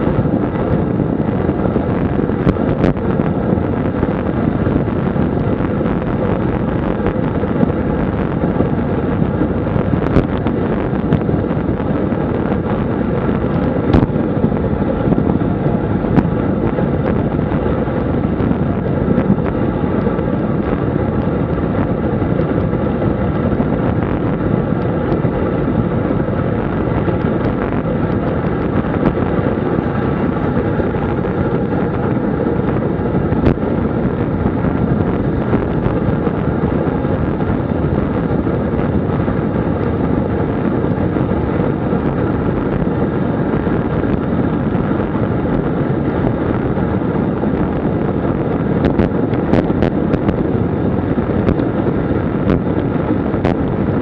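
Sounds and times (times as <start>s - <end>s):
wind noise on microphone: 0.0s - 54.0s.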